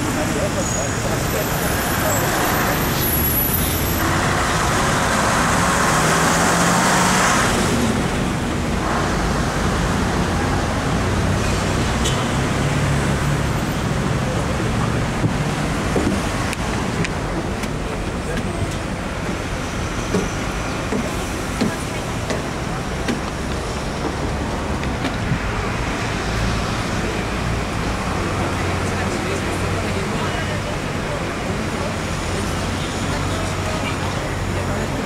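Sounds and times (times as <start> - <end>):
bus engine and road noise: 0.0 - 35.0
surrounding traffic: 0.0 - 35.0.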